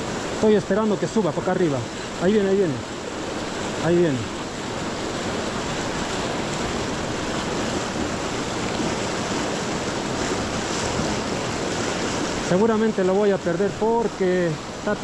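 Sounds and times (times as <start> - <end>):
river rushing over rocks: 0.0 - 15.0.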